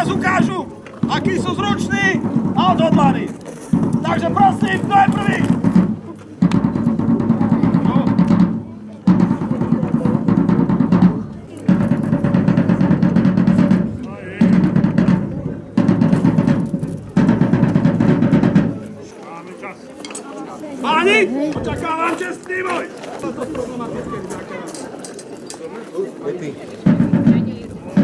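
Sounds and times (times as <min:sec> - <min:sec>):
drum rolls: 0:00.0 - 0:19.1, 0:20.9 - 0:24.2, 0:26.7 - 0:28.0.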